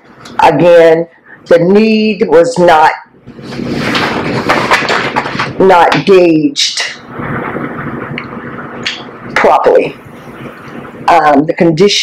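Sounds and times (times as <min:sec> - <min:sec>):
paper rustling: 0:03.7 - 0:05.6.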